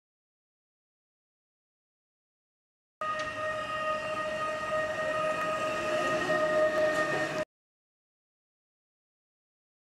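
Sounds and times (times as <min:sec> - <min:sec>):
steady high-pitched tone: 0:03.0 - 0:07.5.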